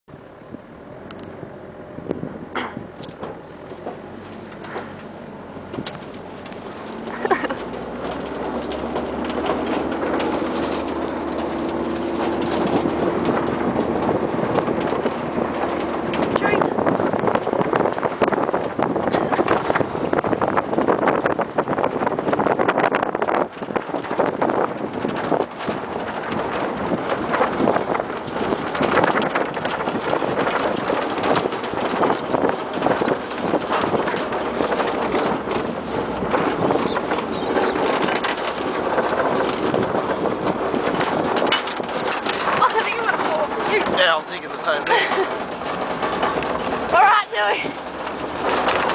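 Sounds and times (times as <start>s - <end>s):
vehicle engine hum: 0.0s - 48.9s
rattling and knocking: 2.1s - 48.9s.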